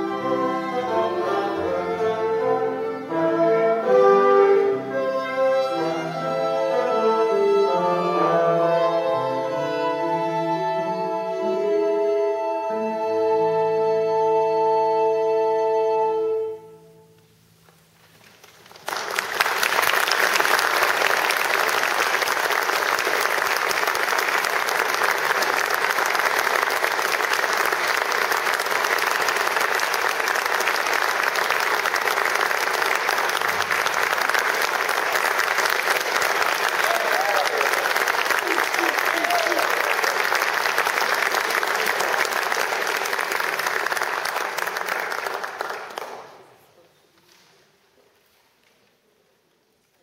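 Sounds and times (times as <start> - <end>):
audience applauding: 18.2 - 46.6.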